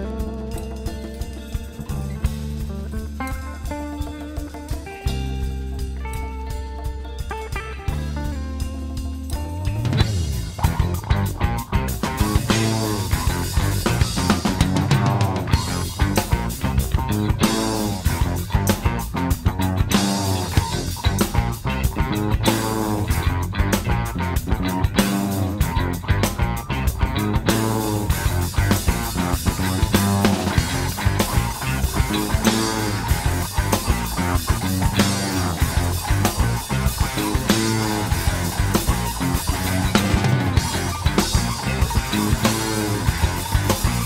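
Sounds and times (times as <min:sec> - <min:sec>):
bass guitar: 0:00.0 - 0:44.0
drum kit beat: 0:00.0 - 0:44.0
electric guitar: 0:00.0 - 0:44.0.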